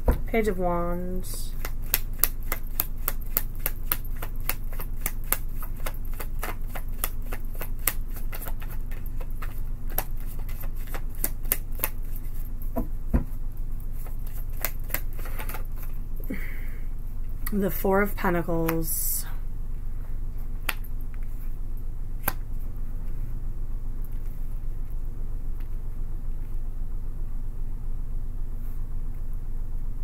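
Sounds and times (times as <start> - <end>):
cards being shuffled: 1.5 - 12.5, 13.9 - 16.0.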